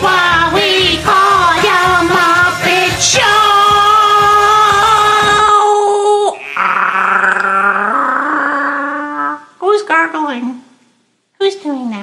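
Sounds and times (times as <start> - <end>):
karaoke backing track: 0.0 - 6.4.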